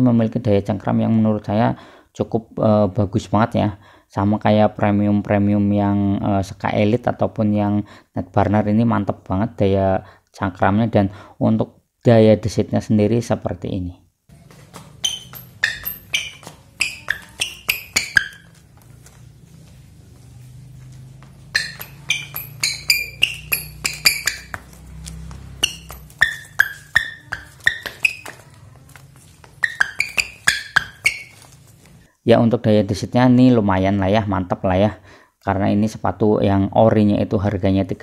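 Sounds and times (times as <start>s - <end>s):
shoes squeaking on tile floor: 14.3s - 32.1s.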